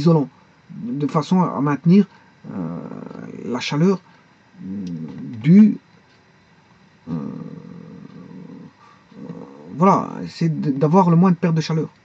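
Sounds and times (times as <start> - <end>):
man's hesitation sound: 0.0 - 4.0, 4.6 - 5.8, 7.0 - 11.3.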